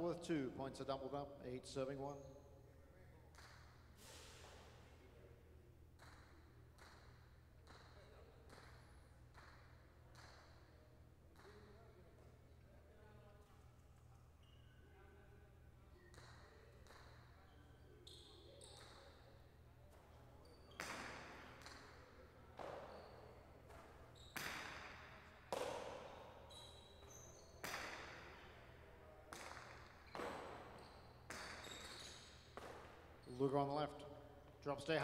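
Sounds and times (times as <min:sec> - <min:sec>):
ball cracking against court walls: 0:20.7 - 0:21.9, 0:23.7 - 0:26.1, 0:27.0 - 0:28.4.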